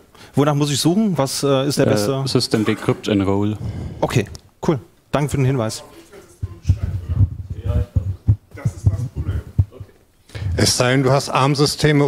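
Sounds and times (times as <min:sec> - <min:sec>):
muffled boomy speech: 0:05.2 - 0:12.0.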